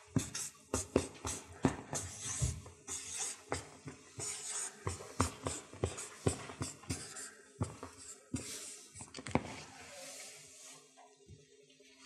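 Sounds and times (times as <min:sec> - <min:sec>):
marker scratching on paper: 0:00.2 - 0:08.8.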